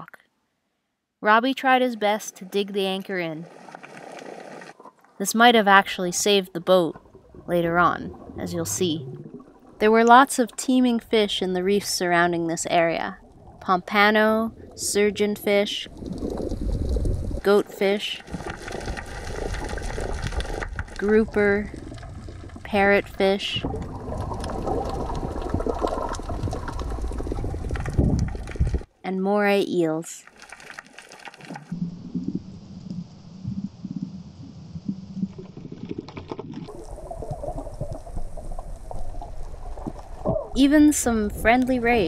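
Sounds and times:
underwater rumble of moving water: 6.8s - 10.2s, 10.8s - 17.5s, 18.2s - 28.9s, 30.3s - 42.0s
faint crackling clicks: 18.2s - 21.0s, 23.7s - 28.9s.

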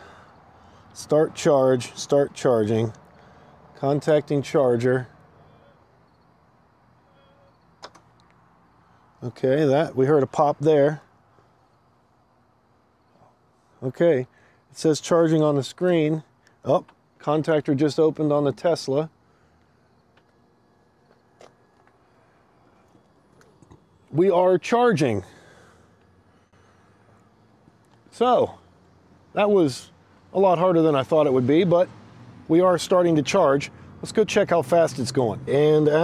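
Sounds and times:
faint outdoor background hiss: 0.0s - 36.0s.

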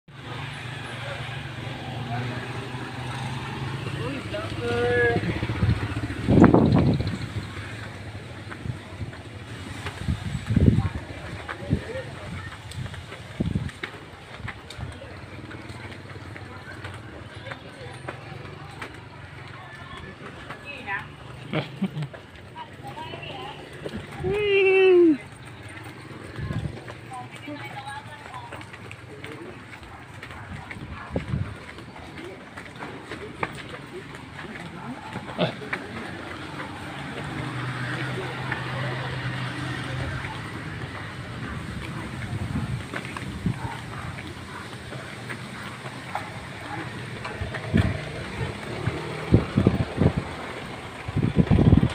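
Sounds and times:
faint voices talking: 0.1s - 51.9s
street noise: 0.1s - 51.9s
vehicle engine running: 0.2s - 51.9s
footsteps on concrete: 0.8s - 51.9s.

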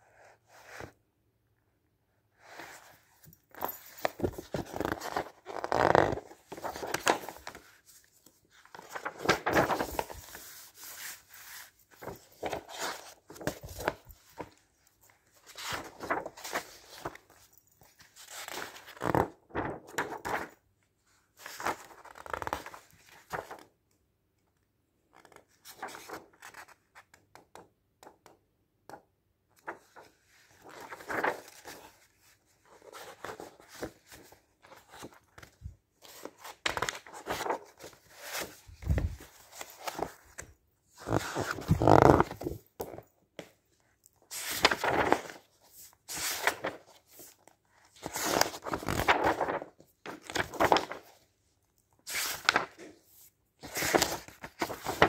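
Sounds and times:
magazine pages rustling: 2.6s - 20.6s, 21.4s - 23.7s, 25.3s - 26.8s, 29.6s - 43.5s, 44.2s - 51.3s, 52.1s - 55.0s.

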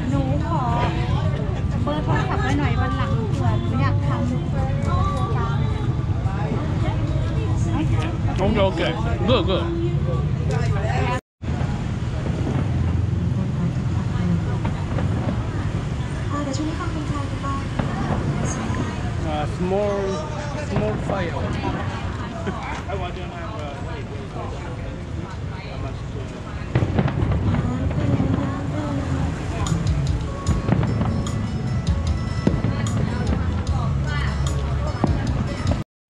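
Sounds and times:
voices chatting: 0.0s - 11.2s, 12.5s - 35.8s
faint background voices: 0.0s - 35.8s
street traffic rumble: 0.0s - 35.8s
fireworks bangs and crackles: 11.4s - 35.8s.

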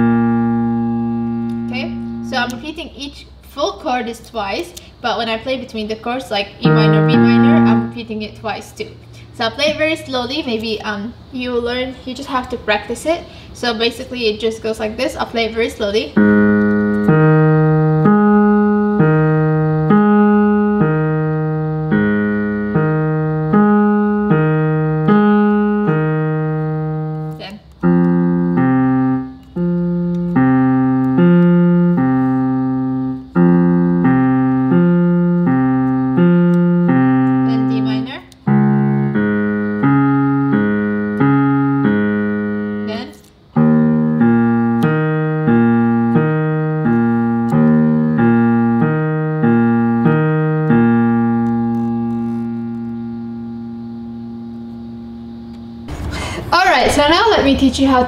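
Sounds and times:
piano chords: 0.0s - 3.4s, 5.2s - 12.8s, 15.0s - 58.0s.

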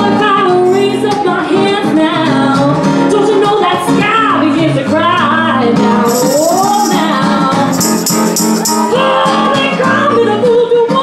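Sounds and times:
woman singing blues: 8.8s - 11.0s.

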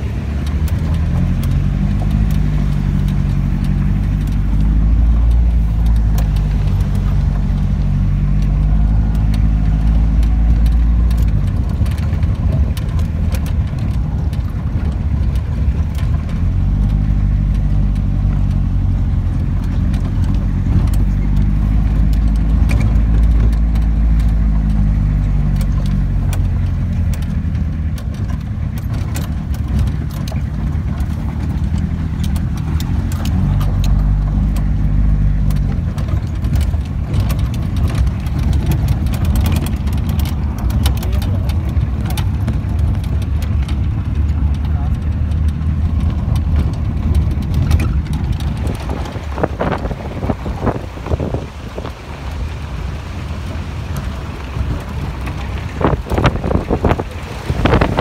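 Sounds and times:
road noise: 0.0s - 58.0s
vehicle engine running: 0.0s - 58.0s.

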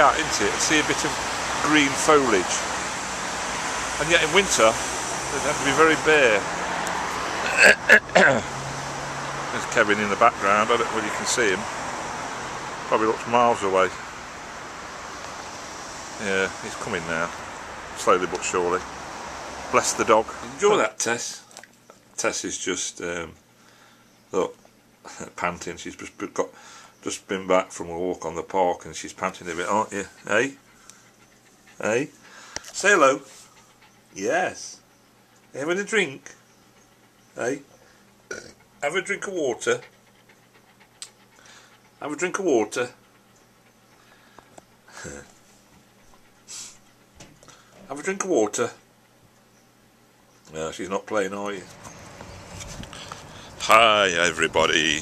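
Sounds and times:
dog panting: 0.0s - 7.4s, 8.5s - 20.8s, 22.7s - 26.6s, 28.1s - 49.8s, 50.7s - 55.0s
outdoor background hiss: 0.0s - 55.0s.

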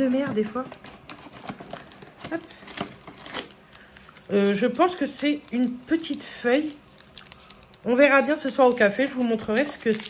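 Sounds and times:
cardboard and wrapping rustling: 0.0s - 7.8s, 8.4s - 10.0s.

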